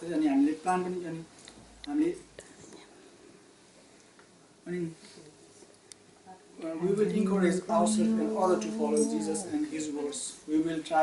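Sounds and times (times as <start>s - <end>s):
man speaking: 6.6s - 11.0s.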